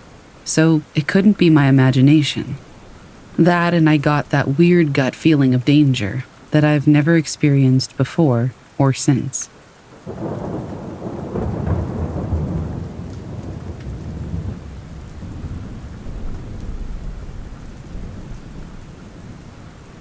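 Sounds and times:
steady rain: 0:00.0 - 0:20.0
rolling thunder: 0:10.0 - 0:20.0.

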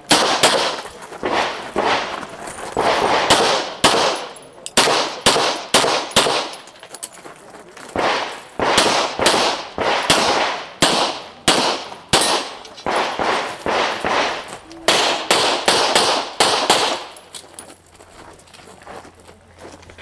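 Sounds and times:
pistol shots with echo: 0:00.0 - 0:02.1, 0:02.8 - 0:06.7, 0:08.0 - 0:17.3.

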